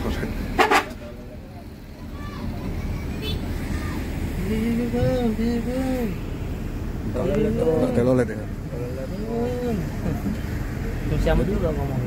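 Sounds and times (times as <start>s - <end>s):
bus engine rumble: 0.0s - 12.0s
road noise: 0.0s - 12.0s
vehicle horn double toot: 0.6s - 1.0s.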